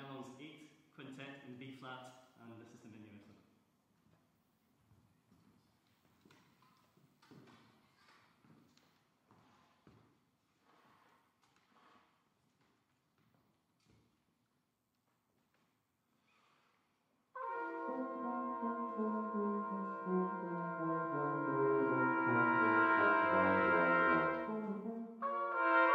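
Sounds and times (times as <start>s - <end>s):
brass quintet playing chords: 17.4s - 25.9s.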